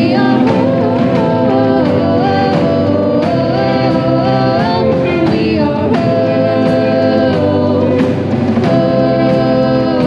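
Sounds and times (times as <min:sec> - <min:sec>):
rock band playing: 0:00.0 - 0:10.0
singers in harmony: 0:00.0 - 0:10.0.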